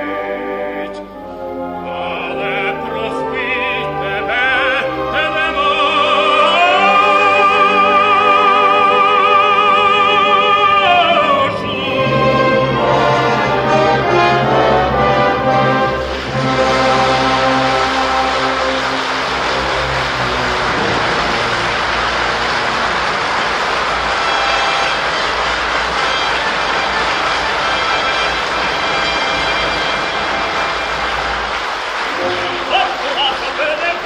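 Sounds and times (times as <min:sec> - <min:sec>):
faint orchestral notes: 0:00.0 - 0:34.0
audience applauding: 0:02.0 - 0:34.0.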